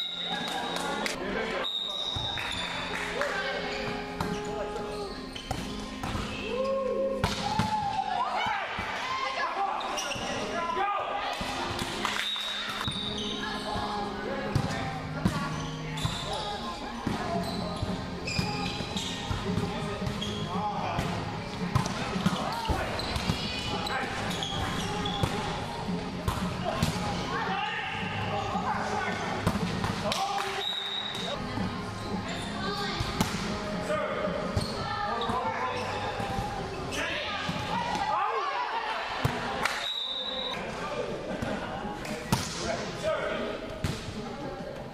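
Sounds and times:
shoes squeaking on court: 0.1s - 3.0s, 3.6s - 6.5s, 9.8s - 10.6s, 12.0s - 20.6s, 21.6s - 26.7s, 34.4s - 37.8s.

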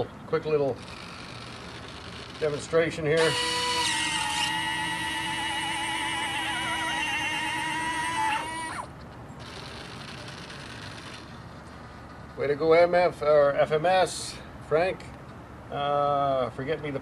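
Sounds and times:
electric motor whine: 0.8s - 11.3s.

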